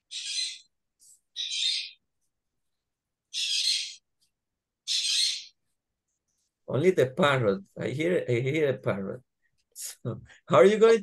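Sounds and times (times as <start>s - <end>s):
parrot calling: 0.0s - 2.0s, 3.3s - 4.1s, 4.8s - 5.6s.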